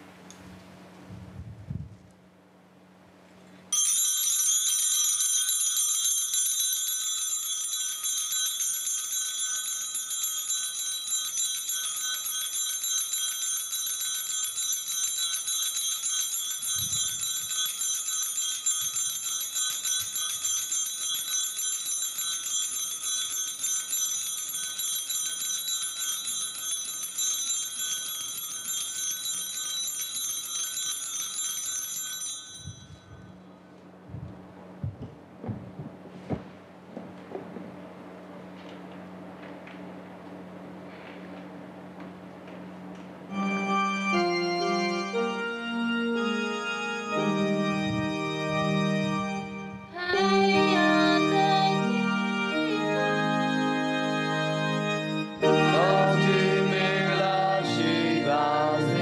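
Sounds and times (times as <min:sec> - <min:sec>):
small bells ringing rapidly: 0:03.7 - 0:33.4.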